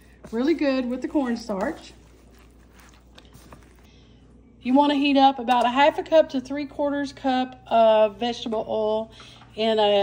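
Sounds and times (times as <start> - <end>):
soft squishing of food: 0.0 - 4.7.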